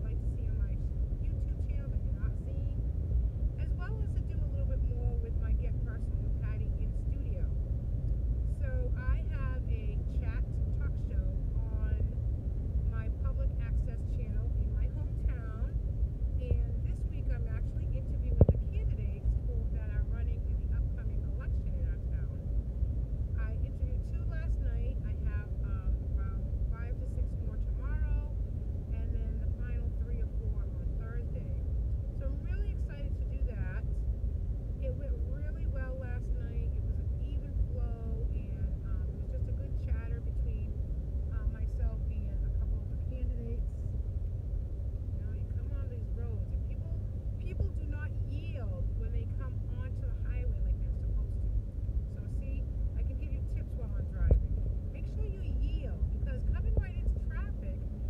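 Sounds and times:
woman talking: 0.0 - 2.8, 3.6 - 7.5, 8.5 - 12.1, 12.9 - 15.7, 16.4 - 22.4, 23.4 - 31.6, 32.2 - 34.0, 34.8 - 43.8, 45.2 - 57.9
car cabin road rumble: 0.0 - 58.0.

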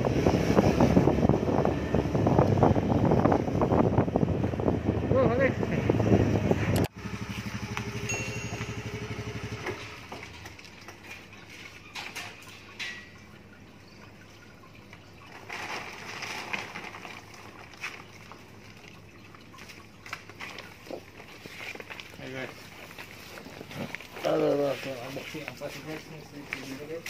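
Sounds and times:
motor scooter engine idling: 3.9 - 10.5.

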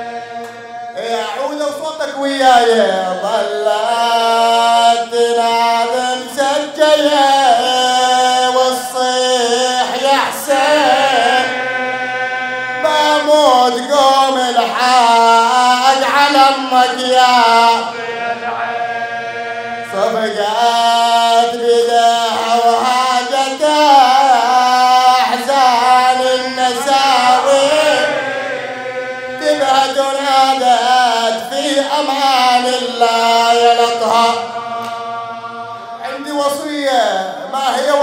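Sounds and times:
man chanting lament: 0.0 - 38.0.

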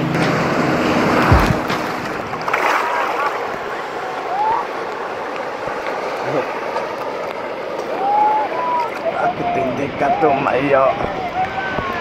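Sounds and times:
ocean surf rushing: 0.0 - 12.0
people calling out: 7.9 - 12.0.

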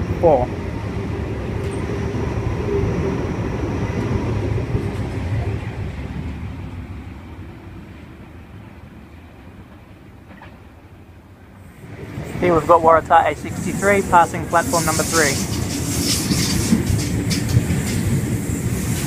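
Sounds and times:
electric train rumbling: 0.0 - 19.0
thin high whine: 12.4 - 16.6.

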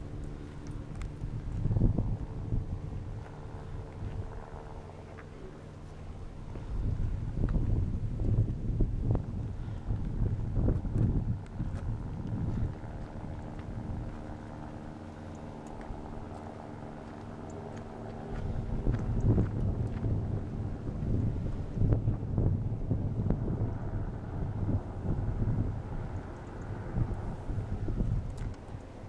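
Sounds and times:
faint steady hum: 0.0 - 29.0
wind buffeting microphone: 0.0 - 29.0.

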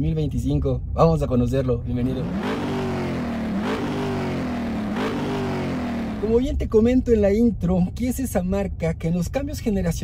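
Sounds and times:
car engine revving: 2.0 - 6.6.

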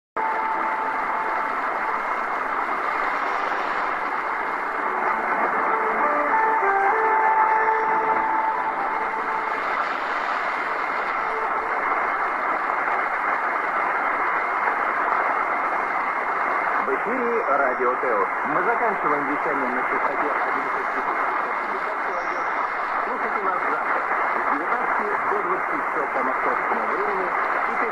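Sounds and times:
faint music notes: 0.2 - 12.8
radio hiss and static: 0.2 - 27.9.

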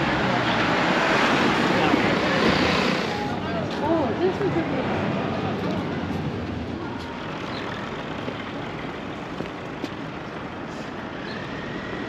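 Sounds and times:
passersby talking: 0.0 - 10.4.

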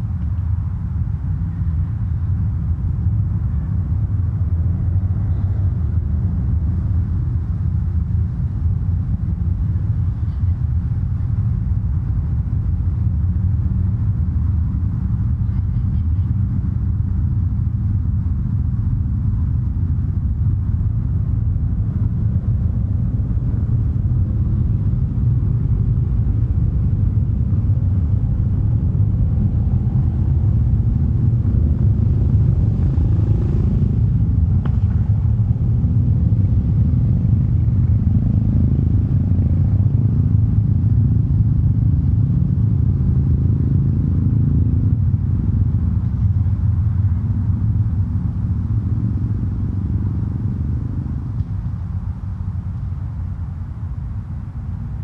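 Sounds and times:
loud low rumble: 0.0 - 52.5.

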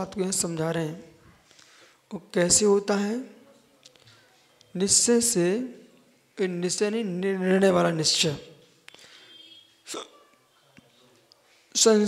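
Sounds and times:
sharp intake of breath: 1.4 - 2.1, 8.9 - 9.6.

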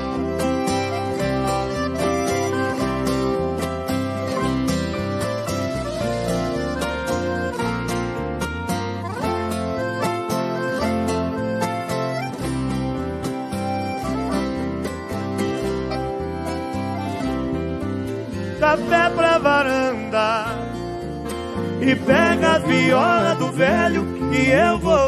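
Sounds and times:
bass line: 0.0 - 25.0
picked acoustic guitar melody: 0.0 - 25.0
person singing: 18.5 - 20.8, 21.8 - 25.0.

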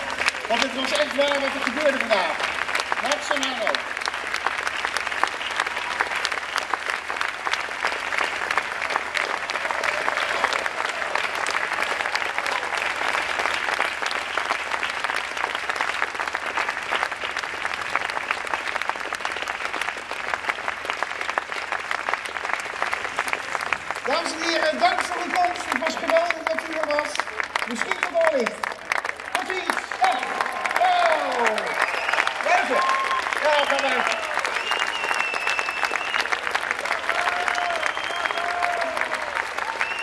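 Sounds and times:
audience applauding: 0.0 - 40.0.

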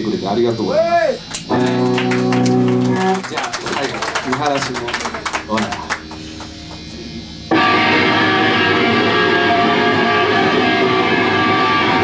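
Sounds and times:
electric guitars playing ringing chords: 0.0 - 12.0.

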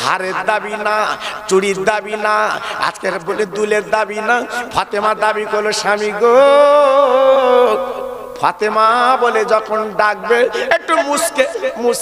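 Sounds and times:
man singing a long held note: 6.2 - 8.4.

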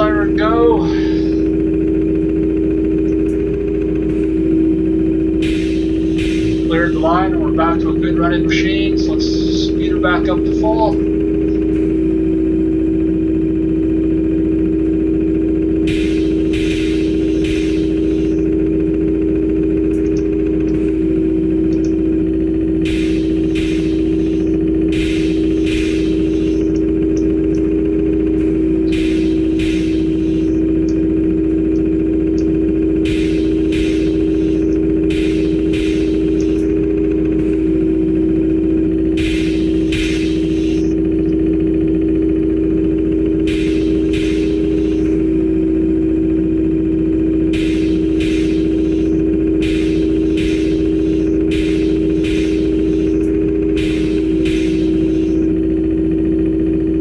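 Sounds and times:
conveyor motor hum: 0.0 - 57.0
pneumatic air hisses: 5.4 - 6.6, 39.2 - 40.9, 43.5 - 45.1, 47.6 - 53.2, 53.8 - 55.4.

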